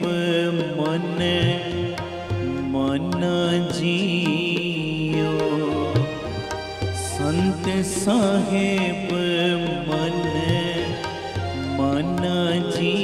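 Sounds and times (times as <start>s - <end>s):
harmonium chords: 0.0s - 13.0s
person singing a melody: 0.0s - 13.0s.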